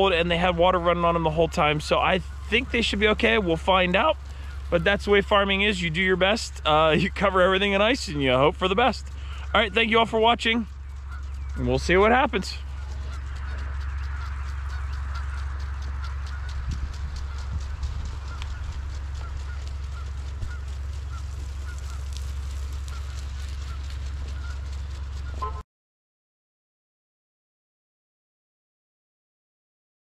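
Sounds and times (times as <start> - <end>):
distant birds calling: 0.0 - 25.6
steady low rumble: 0.0 - 25.6.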